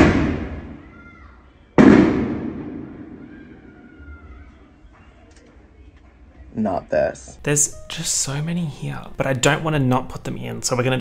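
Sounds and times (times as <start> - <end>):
loud bang with rumbling tail: 0.0 - 0.8, 1.8 - 3.8.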